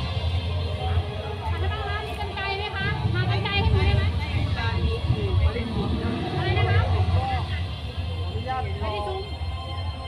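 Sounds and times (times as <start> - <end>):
people talking: 0.7 - 9.4.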